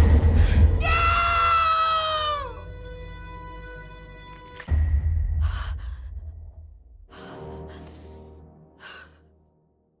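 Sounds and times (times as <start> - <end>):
dramatic trailer music: 0.0 - 10.0.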